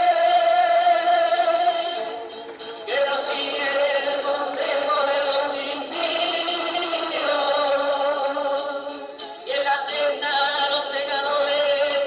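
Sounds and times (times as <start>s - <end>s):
person singing unaccompanied: 0.0s - 12.0s.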